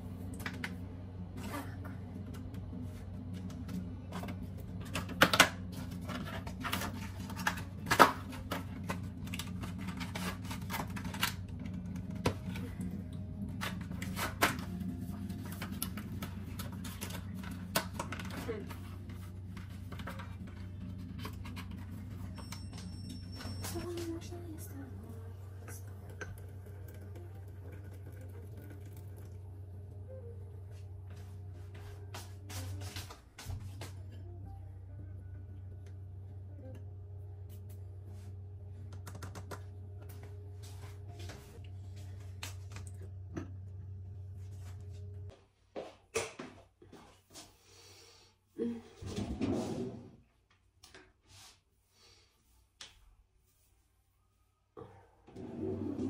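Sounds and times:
steady low hum: 0.0s - 45.5s.

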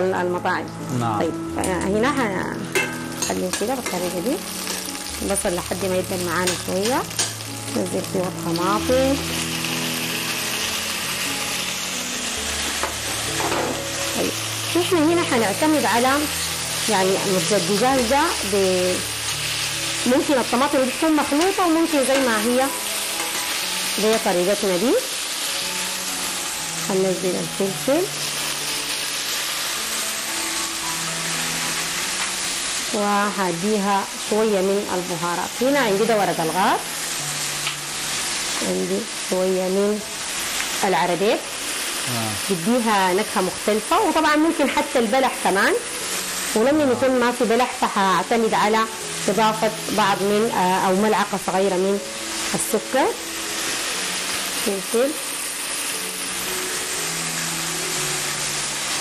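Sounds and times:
vegetables sizzling in a pan: 0.0s - 59.0s.

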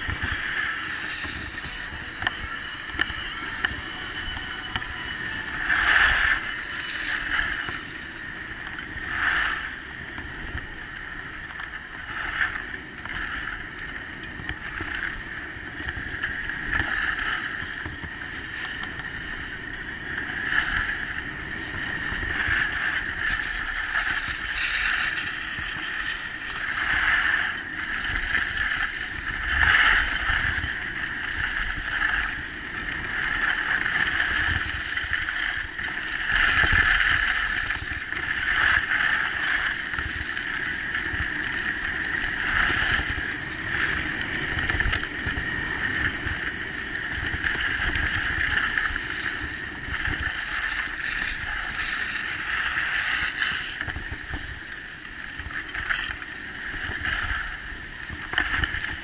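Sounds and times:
skis scraping over snow: 0.0s - 59.0s
wind rumble on microphone: 0.0s - 59.0s.

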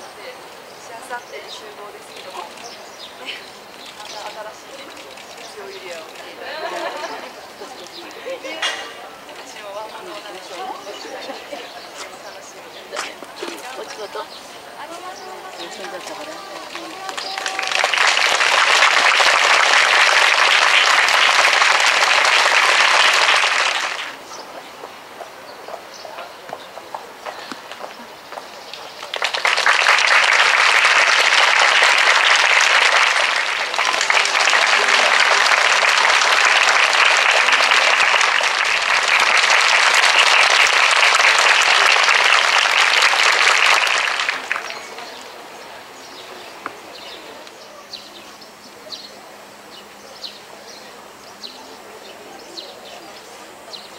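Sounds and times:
crowd clapping: 2.1s - 47.6s.

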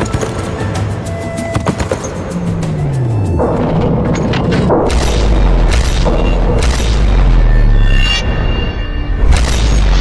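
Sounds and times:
dramatic film score: 0.0s - 10.0s.

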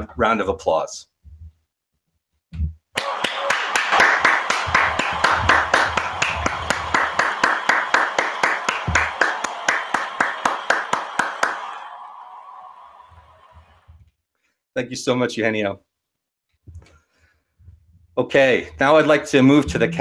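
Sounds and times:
evenly spaced hand claps: 2.9s - 13.1s
crowd applause: 3.0s - 13.9s.

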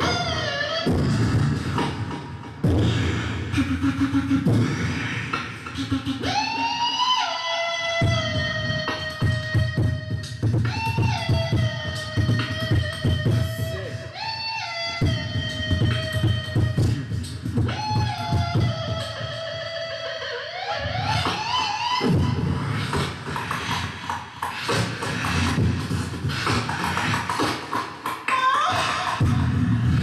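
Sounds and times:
beatboxer siren-like note: 0.0s - 2.2s, 2.9s - 30.0s.

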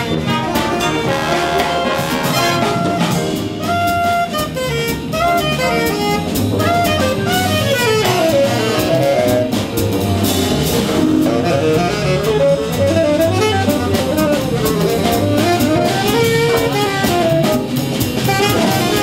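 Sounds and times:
tenor saxophone melody: 0.0s - 9.9s, 11.0s - 19.0s
jazz big band playing: 0.0s - 19.0s.

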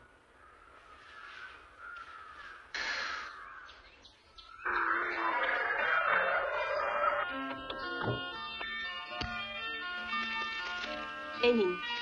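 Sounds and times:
crow cawing: 0.0s - 3.8s
faint bird chirping: 0.0s - 5.7s
music: 5.7s - 12.0s.

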